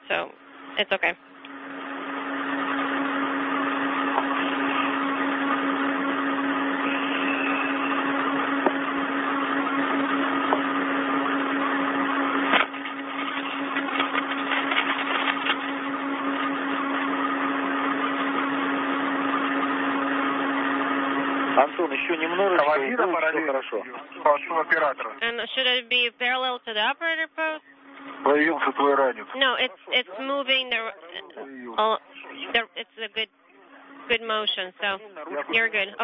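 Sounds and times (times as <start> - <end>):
constant low hum: 0.0 - 36.0
radio hiss: 21.6 - 25.4, 27.7 - 33.2, 34.1 - 36.0.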